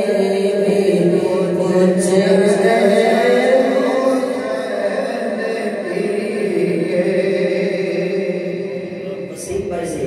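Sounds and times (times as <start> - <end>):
man chanting into microphone: 0.0 - 10.0.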